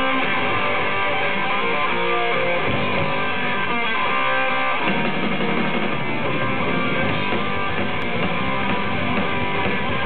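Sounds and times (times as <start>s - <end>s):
electric guitar: 0.0s - 10.0s
heavy metal band playing live: 0.0s - 10.0s.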